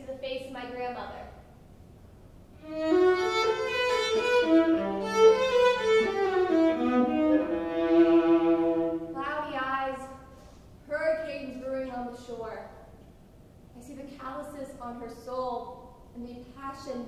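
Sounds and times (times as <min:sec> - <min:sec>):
solo violin bowed notes: 0:02.6 - 0:09.2.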